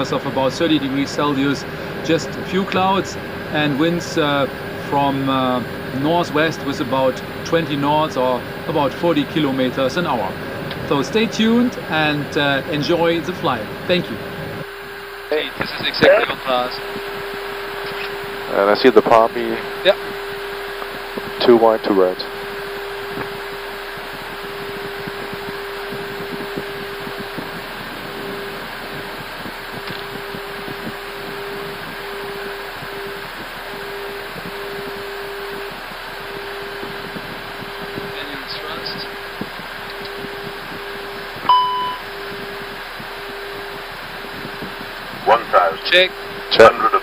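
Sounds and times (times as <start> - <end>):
steady hum: 0.0 - 47.0
short beep: 41.5 - 42.1.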